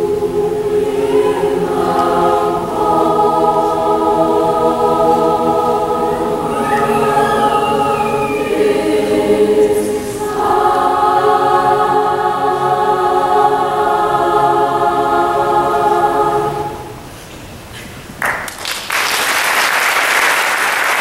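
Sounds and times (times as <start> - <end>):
mixed choir singing: 0.0 - 17.2.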